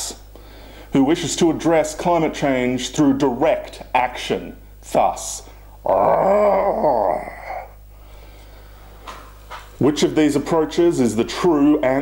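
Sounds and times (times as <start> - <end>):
man imitating animal cry: 5.8 - 7.8.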